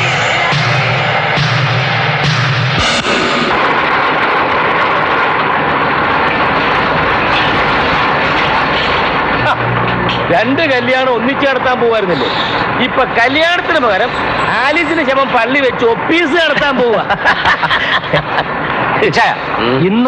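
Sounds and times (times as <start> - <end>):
low drone: 0.0 - 10.8
engine-like roar: 0.0 - 14.6.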